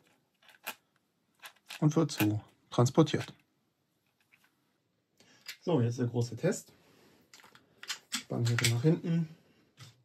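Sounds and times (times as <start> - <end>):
plastic parts clicking together: 0.0 - 2.5, 7.3 - 8.8.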